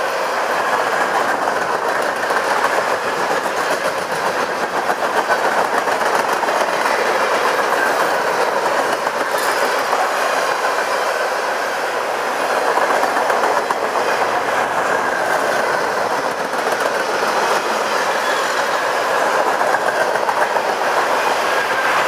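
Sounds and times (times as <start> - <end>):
train wheels running on rails: 0.0 - 22.0
wheels clickety-clack: 0.0 - 22.0.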